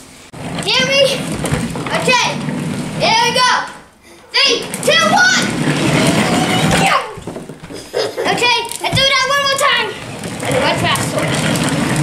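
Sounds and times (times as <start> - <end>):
plastic toy wheels rumbling on wood: 0.3 - 12.0.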